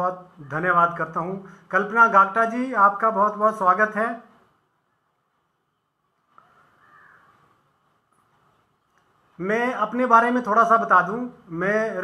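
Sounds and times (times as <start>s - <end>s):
distant animal call: 6.3s - 7.7s.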